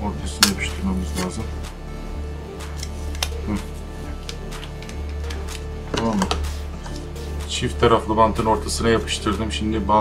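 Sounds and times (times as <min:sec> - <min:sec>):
background music with low bass: 0:00.0 - 0:10.0.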